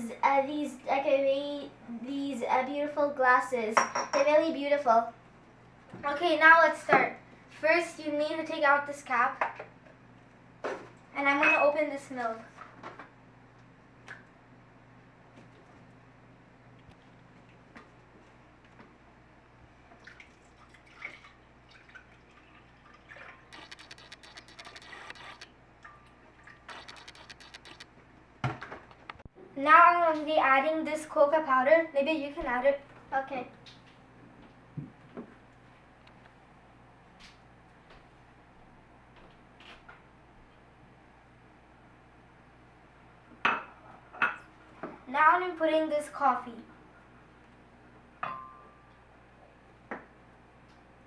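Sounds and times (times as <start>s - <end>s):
dish clinking on stone countertop: 3.8s - 4.3s
milk pouring and splashing: 20.0s - 25.4s.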